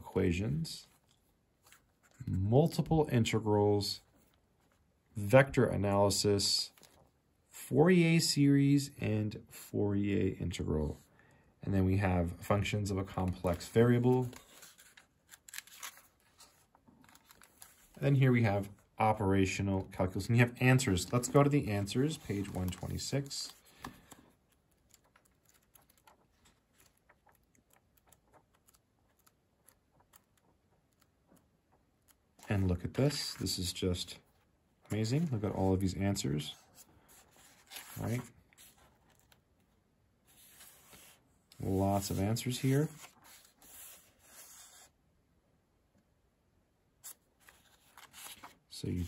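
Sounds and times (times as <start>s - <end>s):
faint paper scrapes: 13.2s - 18.2s, 20.3s - 24.6s, 32.4s - 39.4s, 40.2s - 45.0s
hand brushing paper pages: 21.0s - 27.4s, 36.4s - 39.4s, 40.2s - 44.9s.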